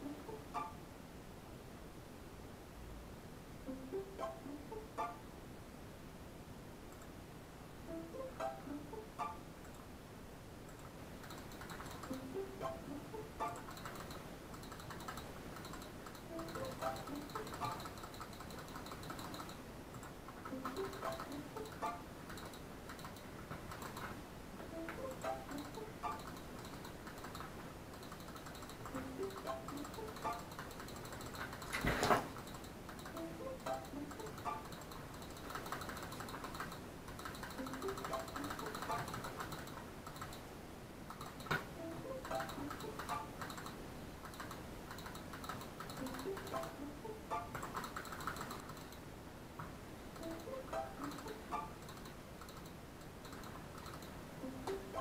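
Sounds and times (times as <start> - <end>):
plucked background music: 0.0 - 0.8, 3.6 - 5.3, 7.8 - 9.5, 11.7 - 14.2, 16.2 - 19.3, 20.4 - 22.4, 23.8 - 26.8, 28.8 - 31.4, 33.0 - 36.6, 37.2 - 39.4, 41.6 - 43.5, 45.9 - 48.6, 50.2 - 51.8, 54.4 - 55.0.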